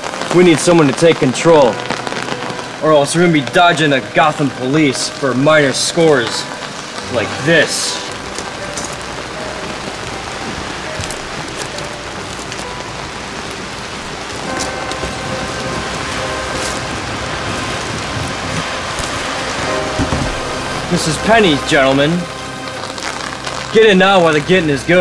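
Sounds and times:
heavy rain falling: 0:00.0 - 0:25.0.

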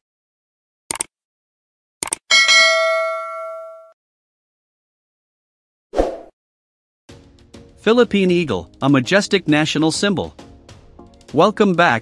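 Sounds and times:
notification bell ding: 0:02.3 - 0:04.0.

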